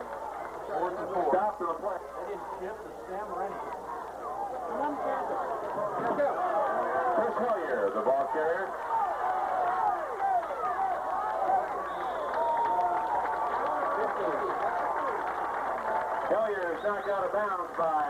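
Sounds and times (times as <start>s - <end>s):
crowd yelling and cheering: 0.0s - 18.0s.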